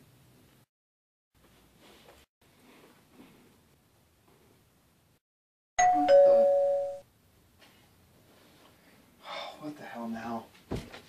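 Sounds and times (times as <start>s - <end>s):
doorbell ding-dong chime: 5.8s - 7.0s.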